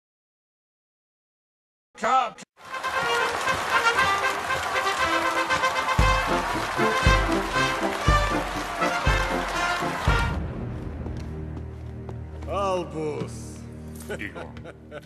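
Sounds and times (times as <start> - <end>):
noisy crowd: 2.6 - 10.5
brass band playing: 2.6 - 10.9
bass drum beats: 6.0 - 11.5.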